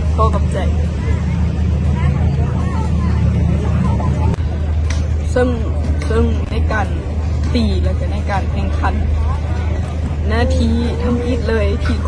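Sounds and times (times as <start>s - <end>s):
faint voices: 0.0s - 12.0s
low-pitched rumble: 0.0s - 12.0s.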